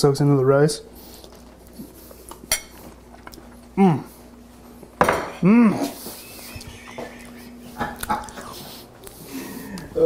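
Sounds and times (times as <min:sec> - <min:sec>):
faint steady hum: 0:00.0 - 0:10.0
person chewing food: 0:01.0 - 0:04.8, 0:05.9 - 0:10.0.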